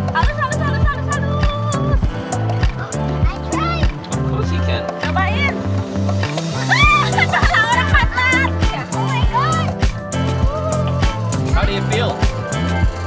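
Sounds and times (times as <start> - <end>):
song with drum beat and vocals: 0.0 - 13.0.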